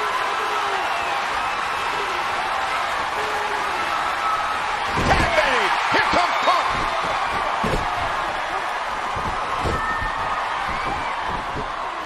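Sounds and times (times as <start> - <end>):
crowd cheering: 0.0 - 12.0
heavy thuds on wrestling mat: 4.9 - 5.4, 6.6 - 8.4, 9.0 - 11.9.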